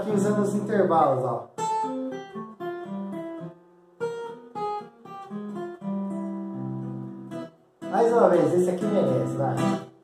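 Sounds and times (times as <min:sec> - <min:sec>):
fingerstyle acoustic guitar: 0:00.0 - 0:10.0.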